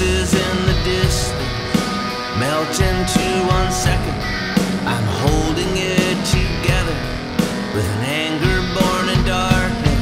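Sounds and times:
electric guitar with bending notes: 0.0 - 10.0
person singing: 0.0 - 10.0
rock band backing: 0.0 - 10.0.

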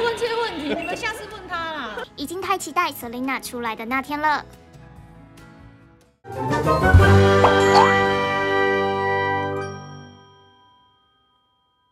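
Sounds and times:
bell-like logo jingle chord: 9.5 - 11.9.

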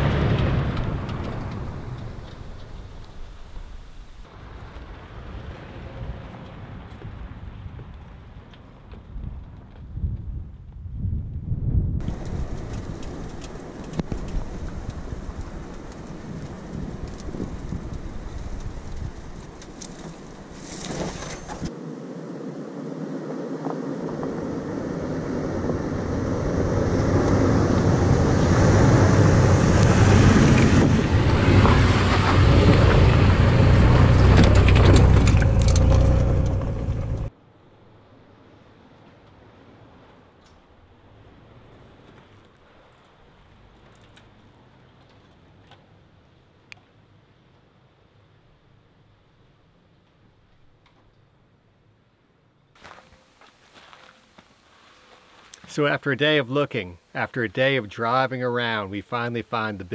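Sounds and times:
vehicle engine rumble: 0.0 - 52.2
tyre noise on gravel: 12.0 - 21.8, 52.8 - 56.0.

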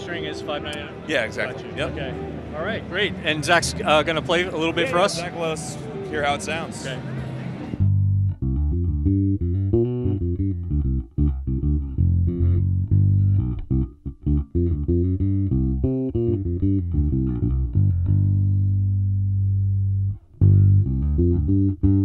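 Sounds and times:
electric bass plucked notes: 7.8 - 22.0.

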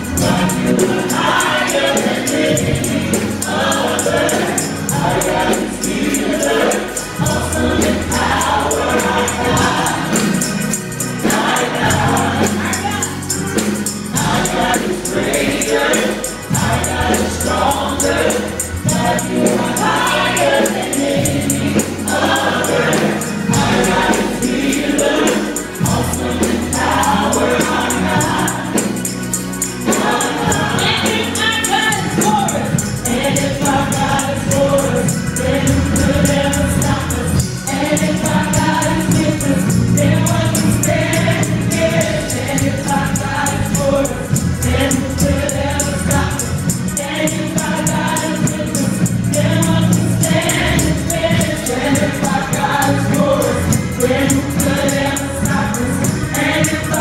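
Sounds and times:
choir singing in harmony: 0.0 - 57.0
instrumental backing: 0.0 - 57.0
sustained bass line: 0.0 - 57.0.

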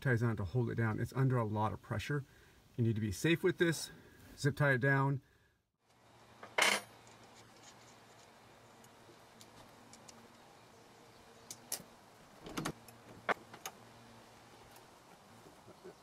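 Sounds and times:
clicks and knocks of metal hinges: 11.5 - 13.8.

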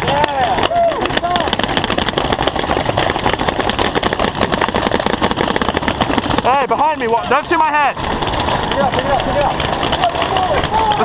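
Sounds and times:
paintball markers firing rapidly: 0.0 - 11.0.

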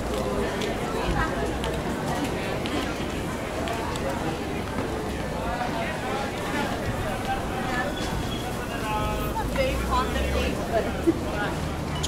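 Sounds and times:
busy street background noise: 0.0 - 12.0
passers-by talking: 0.0 - 12.0.

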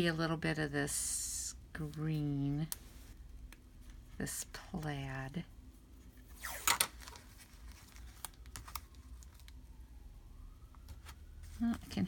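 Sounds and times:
tape ripping off roll: 6.4 - 7.2
faint distant siren: 7.4 - 12.0.

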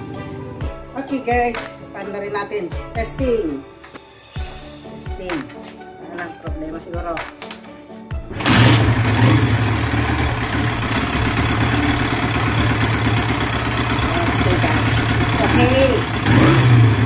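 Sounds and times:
motorcycle engine starting and idling: 8.3 - 17.0.

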